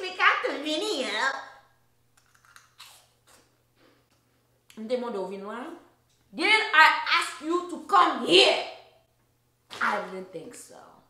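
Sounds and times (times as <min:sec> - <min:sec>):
crunchy snacks being eaten: 0:02.2 - 0:03.5.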